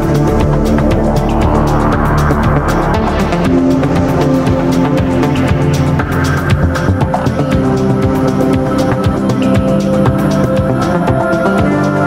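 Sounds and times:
deep house music: 0:00.0 - 0:12.0.

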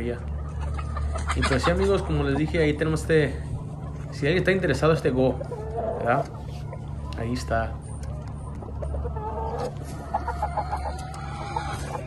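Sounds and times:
chickens clucking: 0:00.0 - 0:12.0
steady low hum: 0:00.0 - 0:12.0.

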